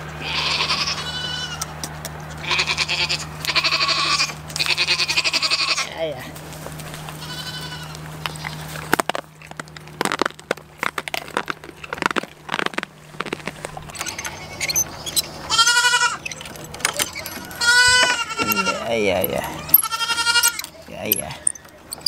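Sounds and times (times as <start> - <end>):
goats bleating: 0.2 - 1.7, 2.4 - 6.2, 7.1 - 8.8, 13.9 - 22.0
goats nibbling with crunches: 6.3 - 22.0.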